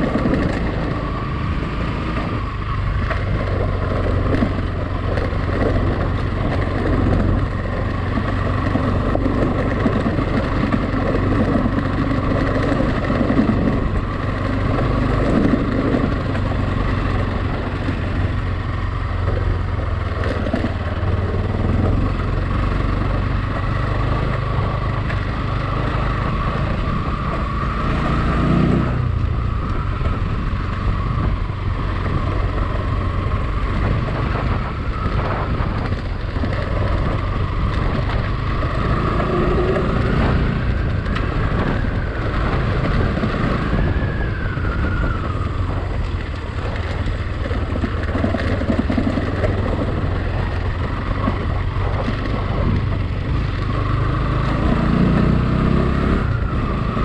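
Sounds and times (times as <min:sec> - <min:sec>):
motorcycle engine running: 0:00.0 - 0:57.0.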